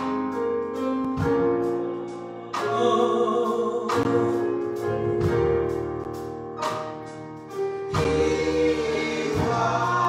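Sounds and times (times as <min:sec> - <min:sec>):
musical accompaniment: 0:00.0 - 0:10.0
group singing gospel: 0:02.1 - 0:04.4, 0:07.9 - 0:10.0.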